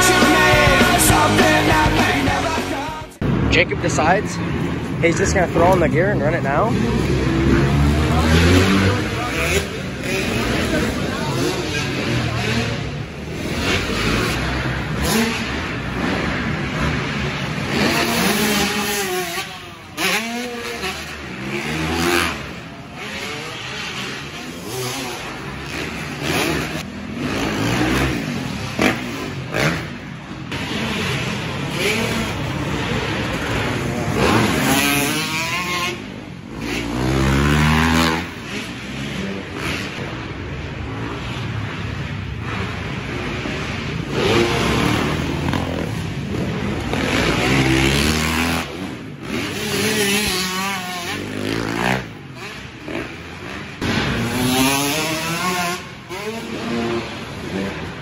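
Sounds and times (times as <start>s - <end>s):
dirt bike engines revving: 0.0s - 58.0s.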